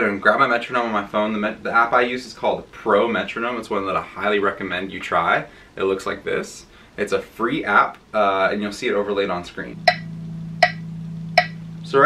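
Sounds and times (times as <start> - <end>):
low hum: 9.6 - 12.0
metronome clicking: 9.9 - 10.8, 11.4 - 11.6.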